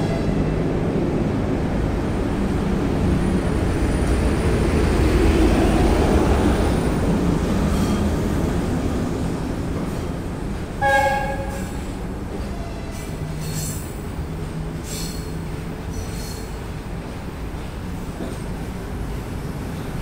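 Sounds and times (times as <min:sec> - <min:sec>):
train wheels rumbling on rails: 0:00.0 - 0:20.0
locomotive horn blast: 0:10.8 - 0:11.9.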